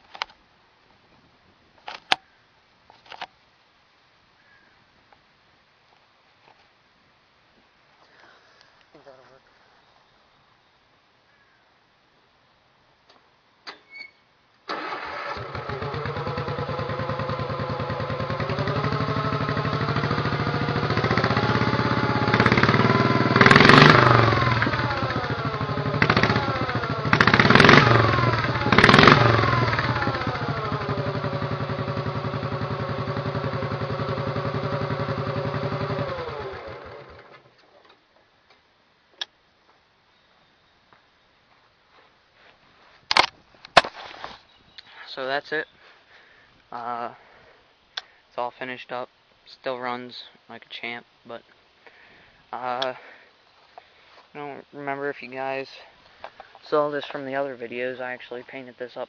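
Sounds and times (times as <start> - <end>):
engine revving sharply: 14.7 - 37.2
garden tractor engine: 14.7 - 38.0.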